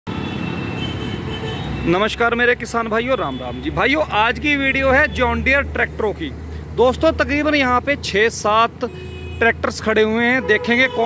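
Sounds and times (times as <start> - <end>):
road traffic and engine noise: 0.0 - 11.0
man talking: 1.8 - 11.0.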